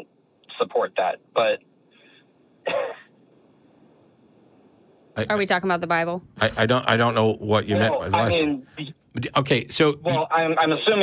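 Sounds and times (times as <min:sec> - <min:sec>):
person vocal sound over phone: 0:07.5 - 0:08.6, 0:10.0 - 0:10.2.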